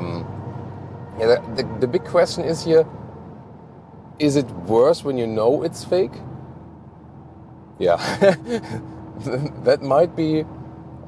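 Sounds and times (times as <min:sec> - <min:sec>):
car road and engine hum: 0:00.0 - 0:11.0
man speaking: 0:01.2 - 0:02.9, 0:07.8 - 0:08.3
man laughing: 0:07.8 - 0:09.6.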